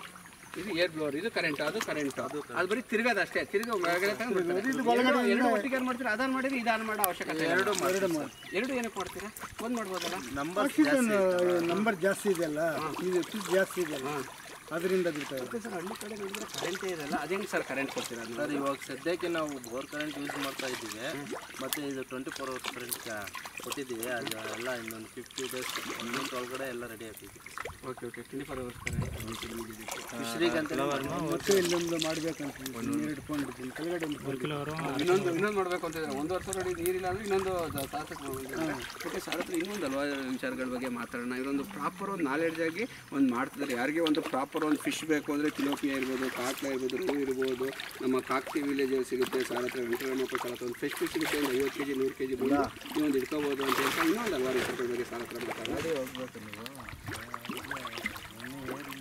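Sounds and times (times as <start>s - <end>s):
man talking: 0.6s - 59.0s
fish splashing at surface: 5.6s - 59.0s.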